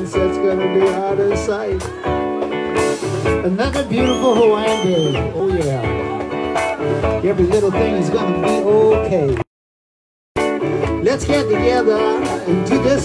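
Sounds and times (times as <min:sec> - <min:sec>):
electric guitar melody: 0:00.0 - 0:09.4, 0:10.4 - 0:13.0.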